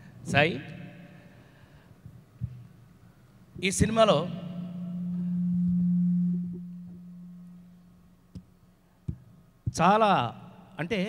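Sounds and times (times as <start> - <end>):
sound system hum: 3.7 - 8.9.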